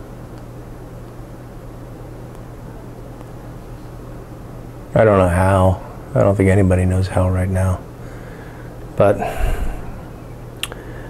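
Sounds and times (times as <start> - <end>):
man speaking: 5.0 - 7.8, 9.0 - 10.0
soft breath: 8.0 - 11.0.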